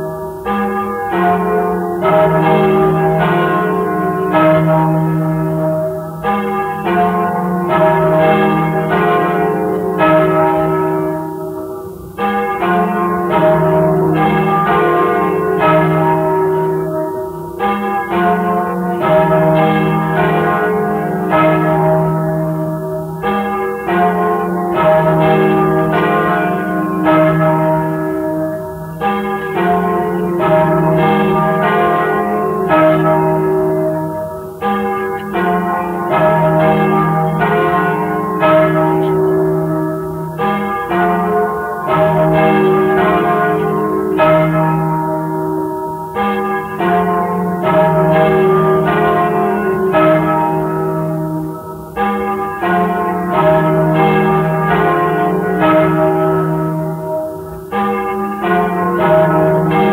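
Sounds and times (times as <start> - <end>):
church bells pealing: 0.0 - 59.9.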